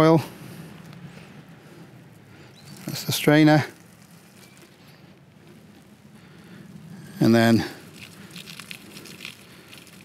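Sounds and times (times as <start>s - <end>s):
water trickling and splashing: 7.7s - 10.0s.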